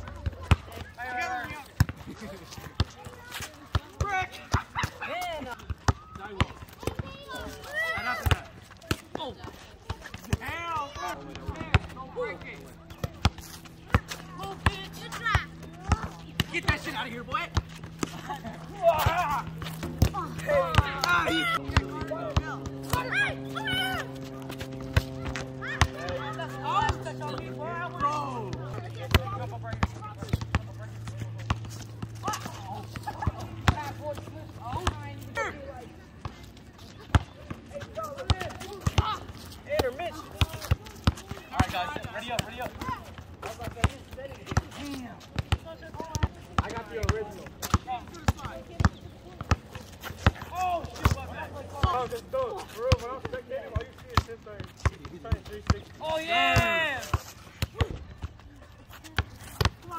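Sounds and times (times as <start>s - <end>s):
players calling out: 0.0s - 59.9s.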